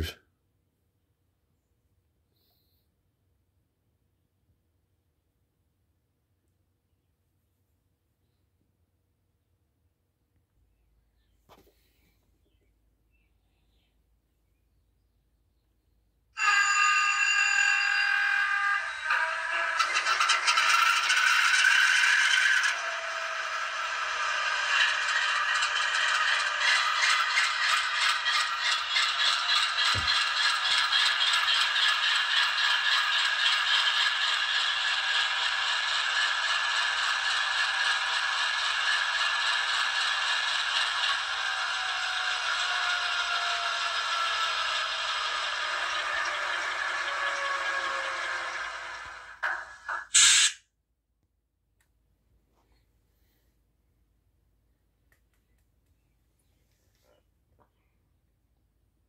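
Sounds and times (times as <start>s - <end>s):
falling whine: 16.4s - 50.6s
tinny diesel engine chug: 16.4s - 50.6s
hiss: 49.4s - 50.6s.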